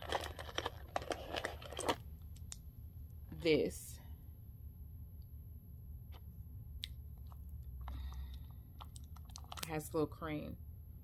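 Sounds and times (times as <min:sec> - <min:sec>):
plastic pouch crinkling and clicking: 0:00.0 - 0:02.5, 0:08.8 - 0:09.7.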